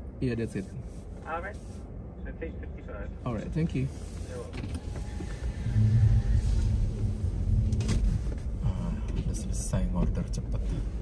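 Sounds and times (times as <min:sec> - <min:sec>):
low hum: 0:03.8 - 0:11.0.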